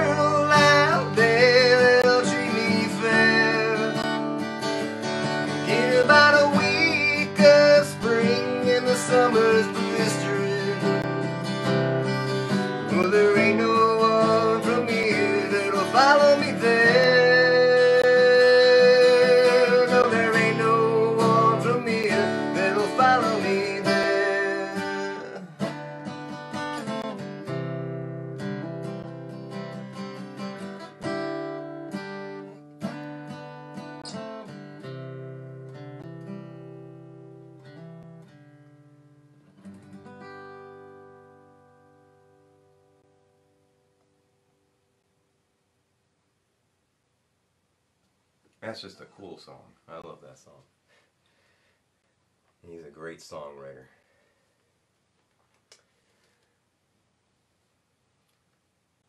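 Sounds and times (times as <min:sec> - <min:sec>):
man singing: 0:00.0 - 0:04.2, 0:05.4 - 0:11.4, 0:12.8 - 0:25.8
acoustic guitar strumming: 0:00.0 - 0:44.6.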